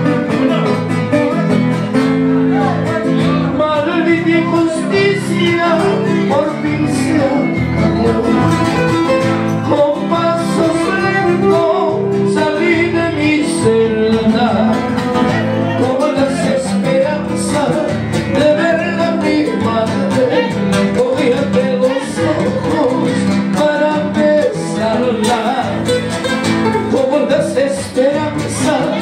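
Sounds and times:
acoustic guitars playing: 0.0 - 29.0
man singing into a microphone: 2.2 - 29.0.

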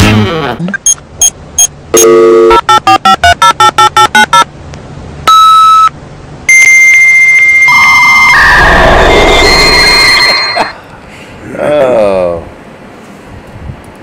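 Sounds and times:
long electronic tone changing pitch: 6.5 - 10.8
short electronic beeps: 7.6 - 10.8.

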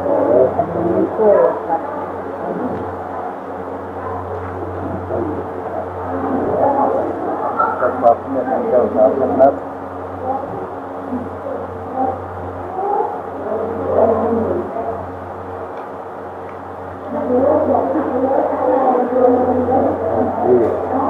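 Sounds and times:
low murmured chanting: 0.0 - 21.0
steady low hum: 0.0 - 21.0.

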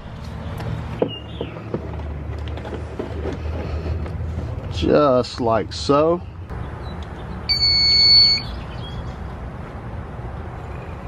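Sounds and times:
high-pitched electronic beep: 7.5 - 8.6.

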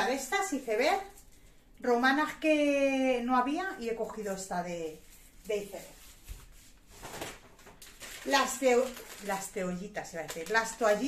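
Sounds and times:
plastic bag rustling: 5.5 - 11.0.

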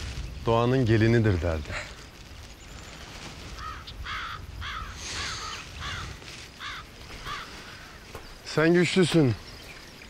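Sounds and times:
crow cawing: 3.5 - 8.3.

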